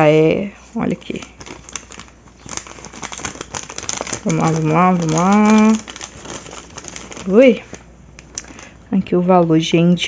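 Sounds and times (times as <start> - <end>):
paper receipt crinkling: 0.8 - 8.8.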